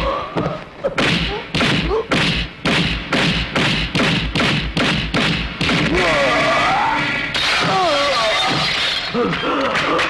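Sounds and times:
punch thuds: 1.0 - 6.0.

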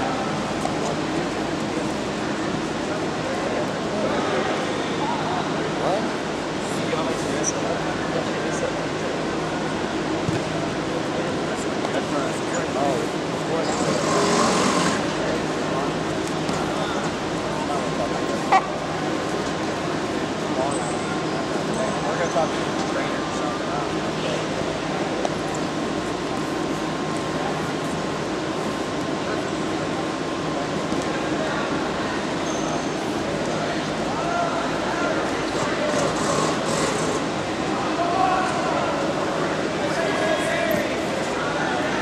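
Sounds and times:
background chatter of people: 0.0 - 42.0
steady hum: 0.0 - 42.0.

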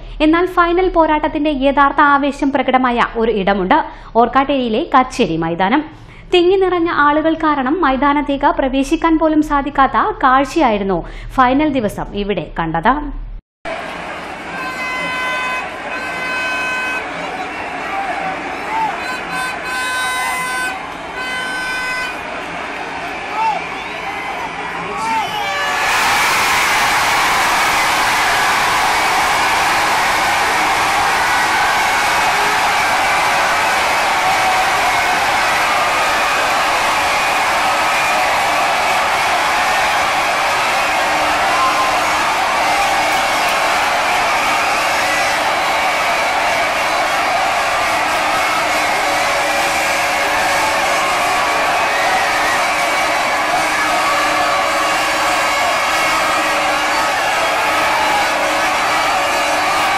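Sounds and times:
crowd of fans cheering: 13.7 - 59.9.

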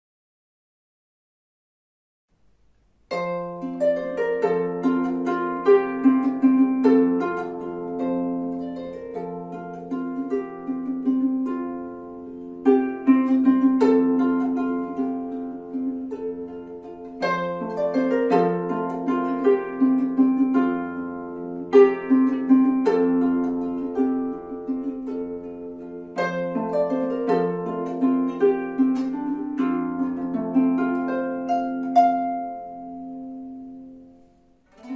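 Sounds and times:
harp melody: 3.1 - 34.9.

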